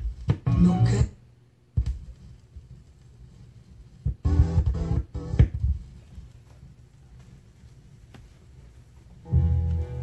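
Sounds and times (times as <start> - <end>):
sampled record chops: 0.0 - 1.2, 1.8 - 7.4, 9.2 - 10.0.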